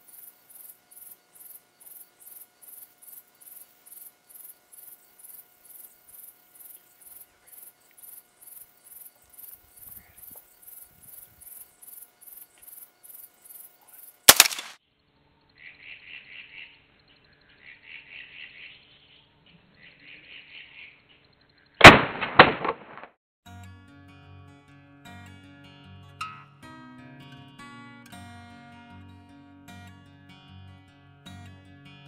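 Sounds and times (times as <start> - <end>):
insects chirping: 0.0 - 22.6
loud rifle shot: 14.3 - 14.8, 21.8 - 23.1.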